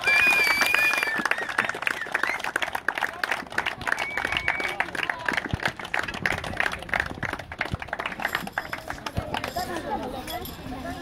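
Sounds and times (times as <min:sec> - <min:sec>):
high-pitched cheering: 0:00.0 - 0:02.5
crowd clapping: 0:00.0 - 0:09.7.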